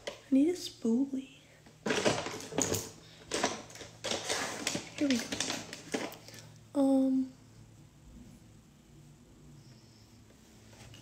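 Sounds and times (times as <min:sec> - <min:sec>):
makeup items clattering in a box: 0:01.8 - 0:06.2.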